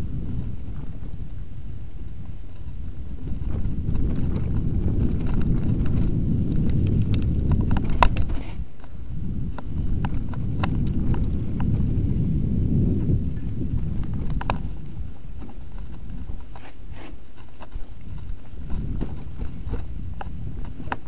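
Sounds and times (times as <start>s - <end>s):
bike rattling over roots: 2.2s - 21.0s.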